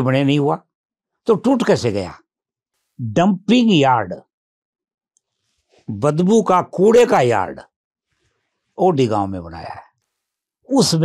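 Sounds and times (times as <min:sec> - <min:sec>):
man speaking: 0:01.3 - 0:02.2, 0:03.0 - 0:04.3, 0:05.9 - 0:07.7, 0:08.8 - 0:09.9, 0:10.7 - 0:11.0.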